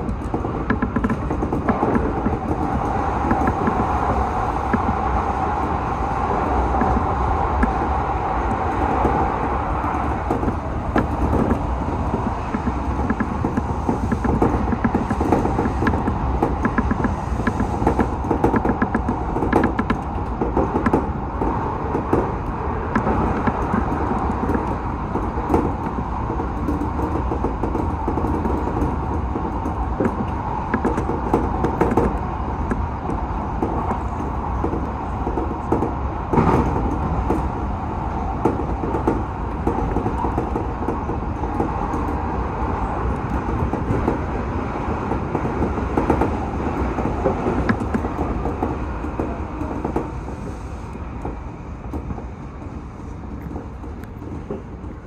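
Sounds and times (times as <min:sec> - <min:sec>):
clicks and knocks: 0:00.0 - 0:04.0, 0:09.8 - 0:37.5
train wheels rumbling: 0:00.0 - 0:55.0.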